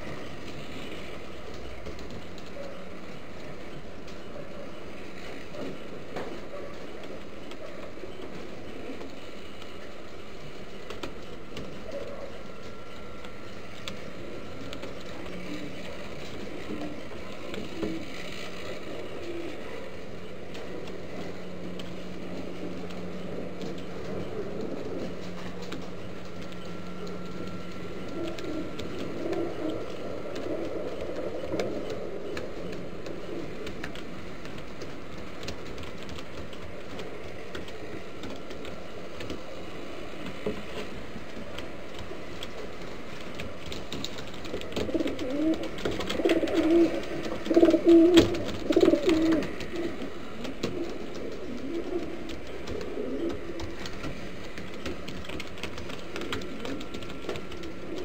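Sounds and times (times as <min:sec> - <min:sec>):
low steady hum: 0:00.0 - 0:58.0
pigeons cooing: 0:00.0 - 0:58.0
steady hiss: 0:00.0 - 0:58.0.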